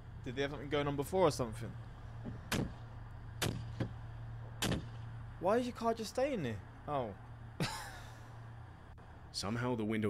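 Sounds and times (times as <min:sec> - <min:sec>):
idling car hum: 0:00.0 - 0:10.0.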